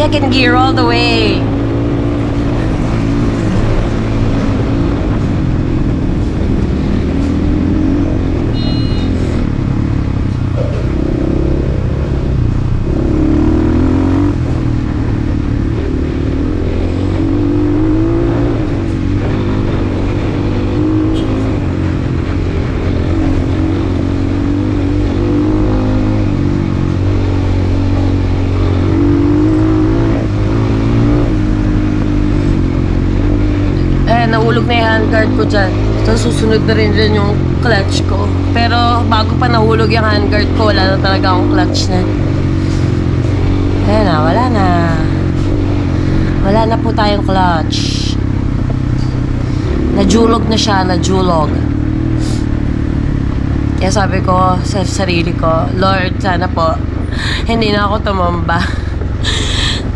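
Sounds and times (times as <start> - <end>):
dirt bike engine running: 0.0 - 59.9
riding noise: 0.0 - 59.9.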